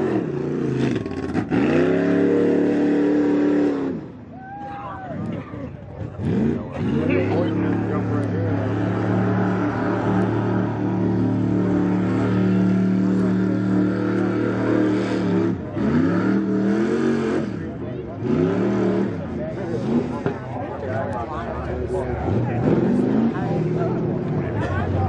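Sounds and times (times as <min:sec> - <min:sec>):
buggy engine revving: 0:00.0 - 0:25.0.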